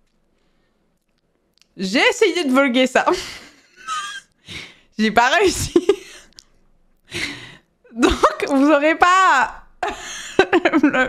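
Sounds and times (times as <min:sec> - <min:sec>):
woman laughing breathily: 0:03.1 - 0:04.8, 0:05.8 - 0:06.3, 0:09.8 - 0:11.0.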